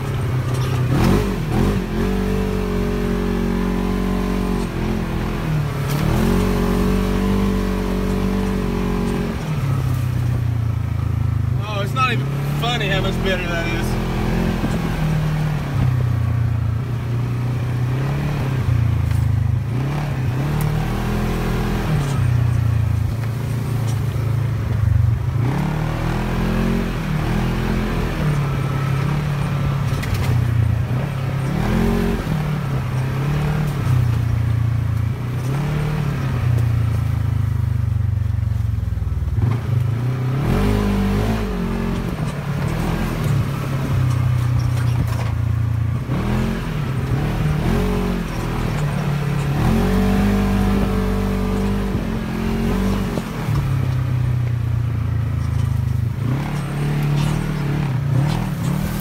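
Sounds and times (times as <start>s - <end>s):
off-road vehicle engine revving: 0.0s - 59.0s.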